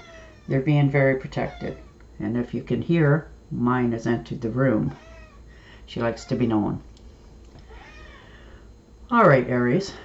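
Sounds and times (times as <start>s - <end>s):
cat meowing faintly: 4.9s - 5.4s, 7.7s - 8.3s.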